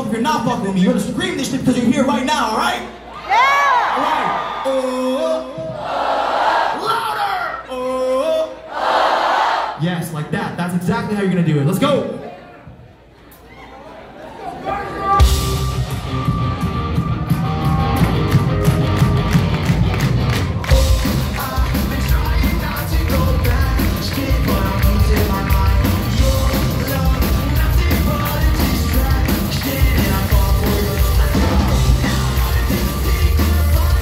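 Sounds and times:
heavy rock band playing: 15.1s - 34.0s
person singing: 20.7s - 34.0s.

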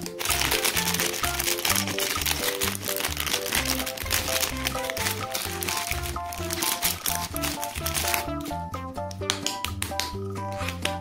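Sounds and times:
plastic wrapper crinkling: 0.0s - 8.6s
background music with bass: 0.0s - 11.0s.

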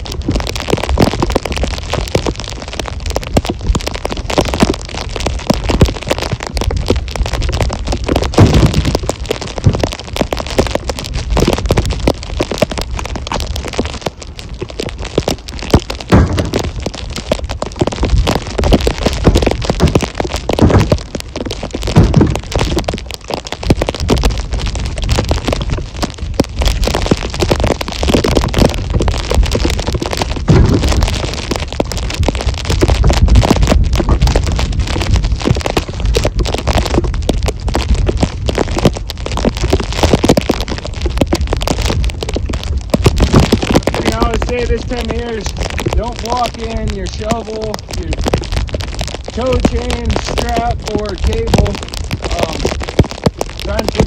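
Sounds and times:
wind on microphone: 0.0s - 54.0s
firewood knocking into truck bed: 16.1s - 16.7s, 20.6s - 21.0s, 22.0s - 22.4s.

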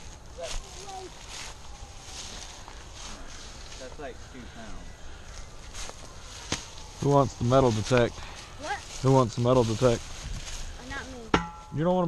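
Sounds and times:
footsteps crunching dry leaves: 0.0s - 11.8s.

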